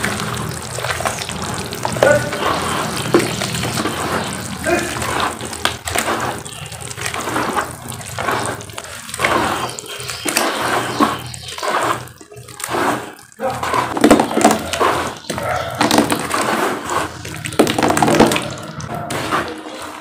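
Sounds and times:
wet cement squelching and sloshing: 0:00.0 - 0:20.0.

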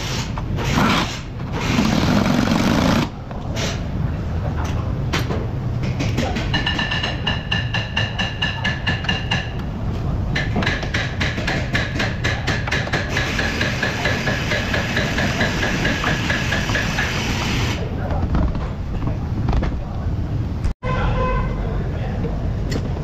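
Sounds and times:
pneumatic impact wrench hammering: 0:00.0 - 0:03.8, 0:10.4 - 0:17.8.

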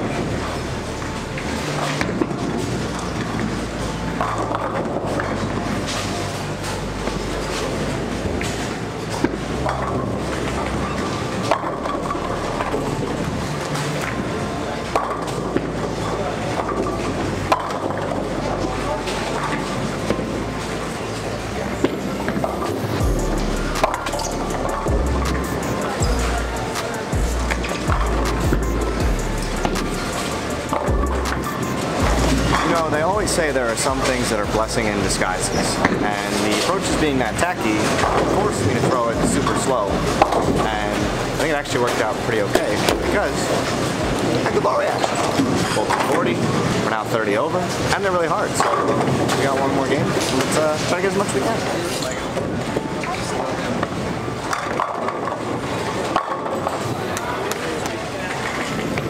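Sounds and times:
bowling balls rolling: 0:00.0 - 0:59.0
babble of voices: 0:12.8 - 0:47.9
music with heavy bass beat: 0:22.2 - 0:33.6, 0:39.9 - 0:41.4.

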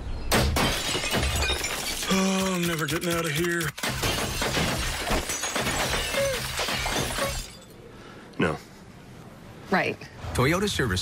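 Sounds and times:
glass crashing and shattering: 0:00.3 - 0:07.8.

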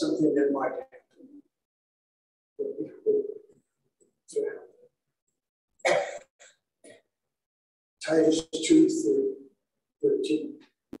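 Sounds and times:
man clearing his throat: 0:05.8 - 0:07.1.

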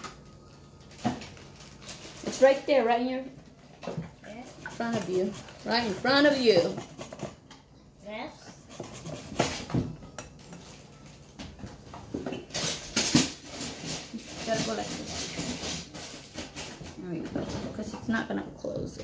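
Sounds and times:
zucchini grated on metal grater: 0:04.3 - 0:07.4.

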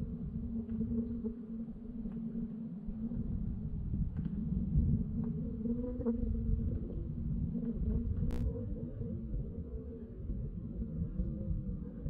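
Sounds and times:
muffled underwater rumble: 0:00.0 - 0:12.0.

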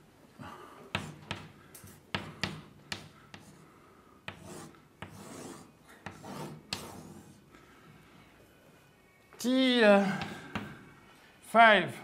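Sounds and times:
chalk tapping on blackboard: 0:00.9 - 0:03.6, 0:04.2 - 0:07.4
chalk scraping on blackboard: 0:01.0 - 0:01.4, 0:04.3 - 0:07.5.

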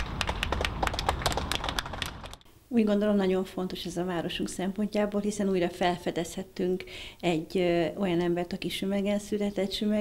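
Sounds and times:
people applauding: 0:00.0 - 0:02.4.

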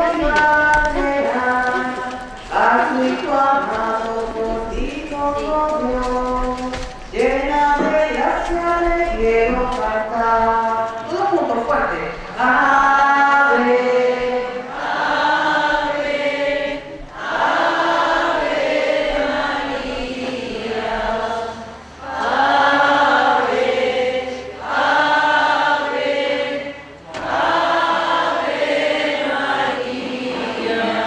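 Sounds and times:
group singing a slow hymn: 0:00.0 - 0:31.0.

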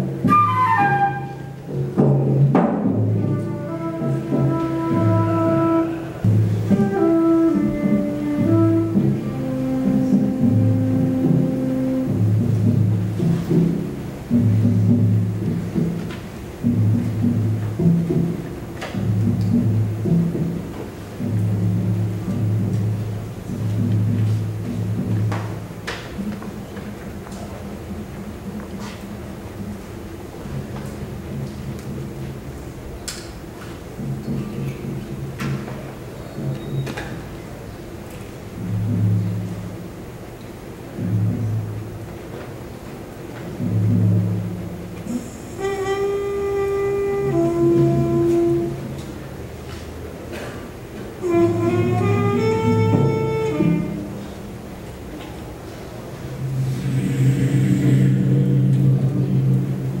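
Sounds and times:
drum rolls on toms: 0:00.0 - 0:33.0, 0:33.6 - 0:49.4, 0:50.1 - 0:55.1, 0:56.0 - 1:00.0
brass horn low held note: 0:45.1 - 0:48.9, 0:51.2 - 0:54.2, 0:56.4 - 1:00.0.

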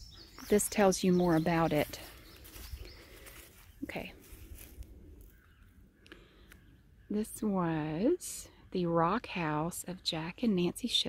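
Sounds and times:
woman speaking: 0:00.4 - 0:02.1, 0:03.8 - 0:04.2, 0:07.1 - 0:11.0.

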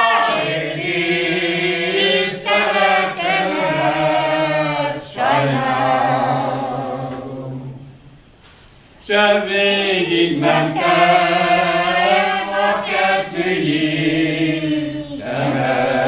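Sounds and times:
group singing folk song unaccompanied: 0:00.0 - 0:08.1, 0:09.0 - 0:16.0.

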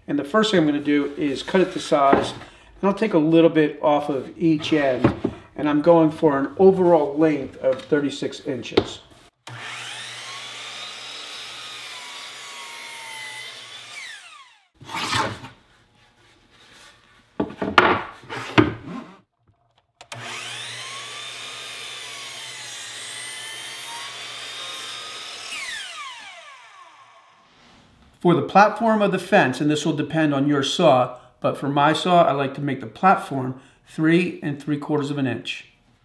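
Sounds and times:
board knocking and clattering: 0:02.1 - 0:02.4, 0:17.4 - 0:18.8
miter saw cutting: 0:09.4 - 0:15.3, 0:20.1 - 0:27.5.

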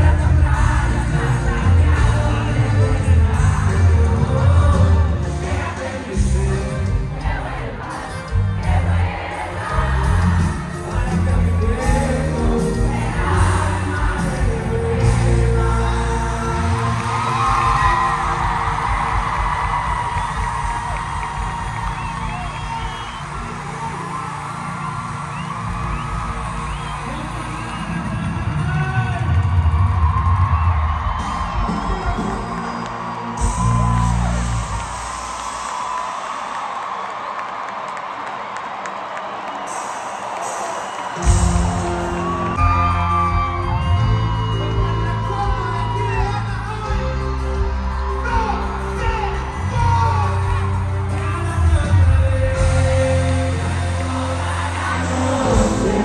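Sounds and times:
live band music over pa: 0:00.0 - 0:36.3, 0:39.5 - 0:56.0
crowd cheering and whooping: 0:00.1 - 0:56.0.

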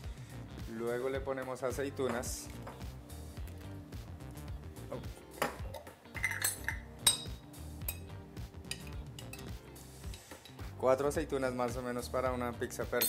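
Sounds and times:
background music: 0:00.0 - 0:13.0
spoon clinking against glass jar: 0:05.4 - 0:10.6.

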